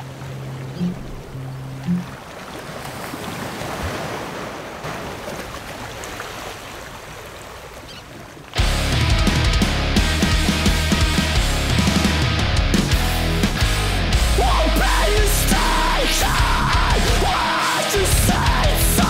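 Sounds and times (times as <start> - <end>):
heavy ocean surf breaking: 0.0 - 7.4
electric guitar rock music: 8.6 - 19.0.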